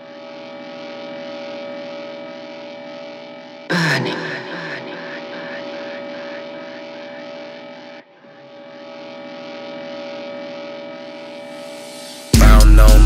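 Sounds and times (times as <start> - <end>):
droning synth chord: 0.0 - 13.0
faint repeating pulse: 0.0 - 13.0.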